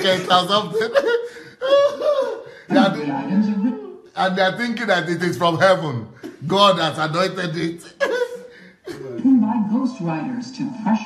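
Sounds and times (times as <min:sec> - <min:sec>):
person talking: 0:00.0 - 0:01.1, 0:02.7 - 0:08.1
man chuckling: 0:00.0 - 0:03.0, 0:07.9 - 0:09.2.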